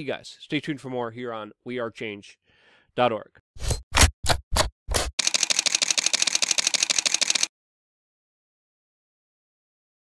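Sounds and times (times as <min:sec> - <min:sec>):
camera shutter clicks: 0:05.2 - 0:07.5.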